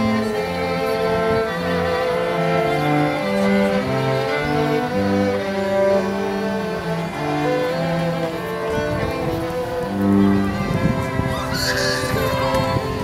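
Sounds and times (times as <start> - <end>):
bowed cello and violin music: 0.0 - 13.0.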